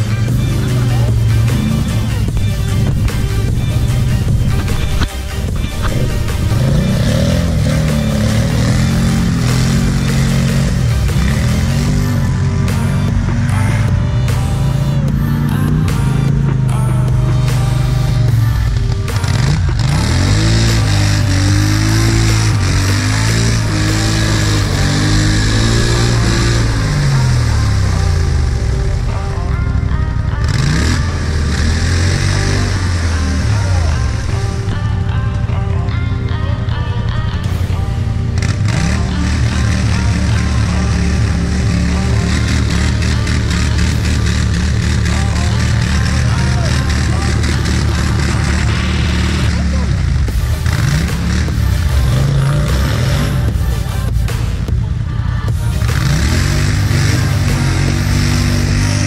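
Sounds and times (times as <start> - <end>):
atv engine revving: 0.0 - 59.0
background music: 0.0 - 59.0.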